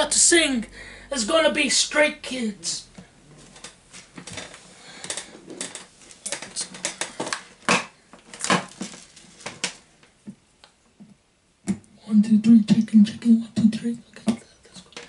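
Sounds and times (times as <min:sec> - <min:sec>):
soft rustling: 0:02.9 - 0:10.2
objects clicking and clattering on desk: 0:03.6 - 0:09.8.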